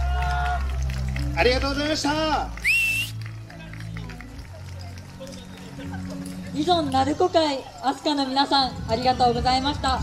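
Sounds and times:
faint crowd voices: 0:00.0 - 0:10.0
low steady music: 0:00.0 - 0:10.0.

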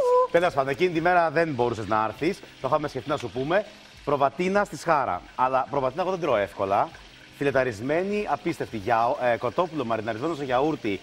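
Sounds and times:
food sizzling in frying: 0:00.0 - 0:11.0.

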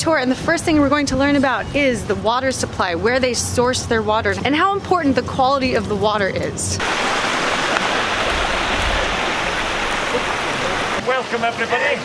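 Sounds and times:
water running over stones: 0:06.8 - 0:12.0.

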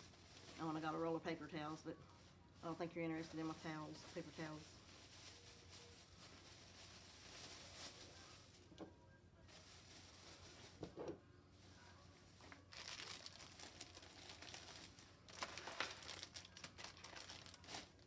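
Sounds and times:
plastic packaging crinkling: 0:00.0 - 0:08.6, 0:12.3 - 0:18.0.

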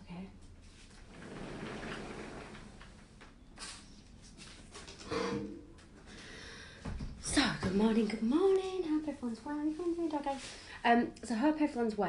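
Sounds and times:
sliding door rolling on track: 0:01.0 - 0:03.2.

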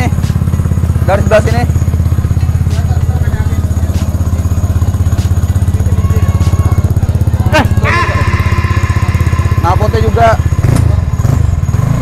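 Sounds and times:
scooter engine idling: 0:00.0 - 0:12.0.

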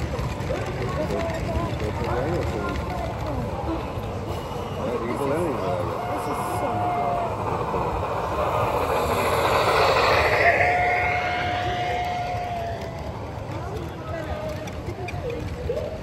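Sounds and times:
toy train wheels rattling: 0:00.0 - 0:16.0.

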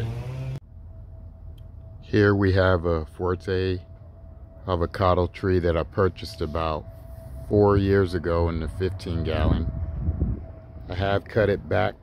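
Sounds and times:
thin steady hum: 0:00.0 - 0:12.0
low rumble: 0:00.5 - 0:12.0
man's voice holding a word: 0:10.9 - 0:12.0.

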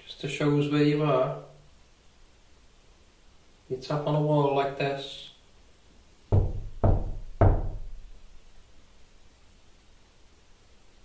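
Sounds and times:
hand knocking on wall: 0:06.3 - 0:08.1.

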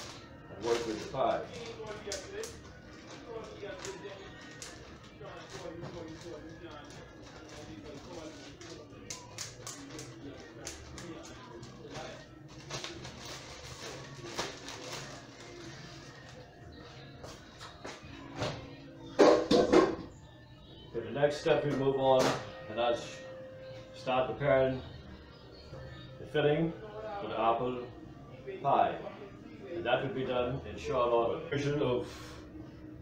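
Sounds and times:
plastic bags crinkling: 0:00.0 - 0:16.5
background music: 0:00.0 - 0:33.0.

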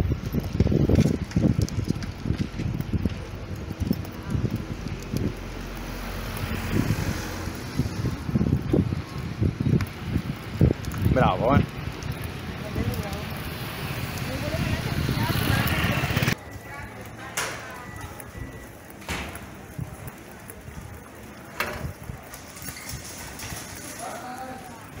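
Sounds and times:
wind on microphone: 0:00.0 - 0:16.4
street ambience: 0:00.0 - 0:25.0
distant voices: 0:01.0 - 0:25.0.

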